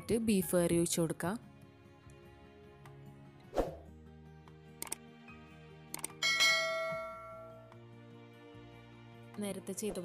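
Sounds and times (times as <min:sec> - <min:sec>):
soft background music: 0:00.0 - 0:10.0
mouse click: 0:04.8 - 0:05.0, 0:05.9 - 0:06.2
bright bell ding: 0:06.2 - 0:07.7.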